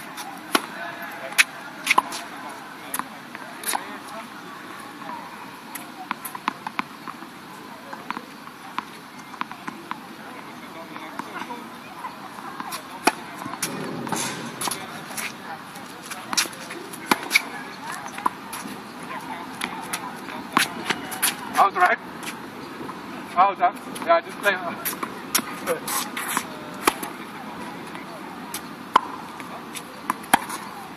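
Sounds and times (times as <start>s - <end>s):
tennis ball hitting rackets: 0.0s - 4.1s, 5.0s - 7.2s, 12.4s - 23.0s, 23.9s - 30.9s
shoes squeaking on court: 0.0s - 23.2s, 23.8s - 30.9s.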